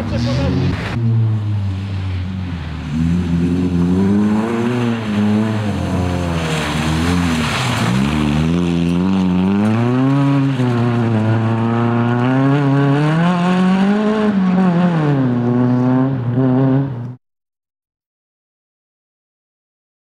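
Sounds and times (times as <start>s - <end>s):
rally car engine revving: 0.0s - 17.2s
tyres on gravel: 4.2s - 11.8s.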